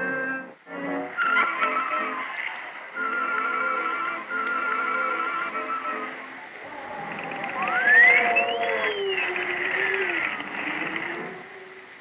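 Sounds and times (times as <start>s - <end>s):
rain hiss: 0.0s - 12.0s
whistling wind tone sliding down: 0.0s - 12.0s
low gliding tones: 4.2s - 11.9s.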